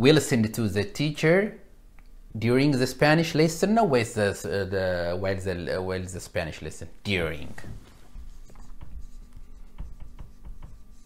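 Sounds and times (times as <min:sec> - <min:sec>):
marker writing on a whiteboard: 0:07.6 - 0:11.0.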